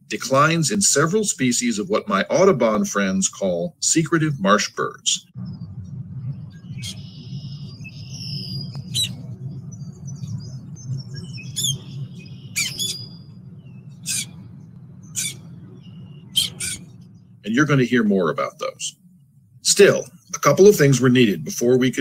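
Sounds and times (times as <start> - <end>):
steady low rumble: 0.0 - 22.0
high bird chirping: 5.3 - 19.4
sharp bird call notes: 6.7 - 9.3, 11.1 - 17.0.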